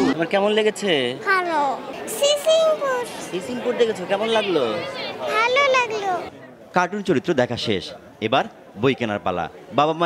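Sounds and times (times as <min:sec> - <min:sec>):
young child speaking: 0:01.2 - 0:03.3, 0:04.8 - 0:06.3.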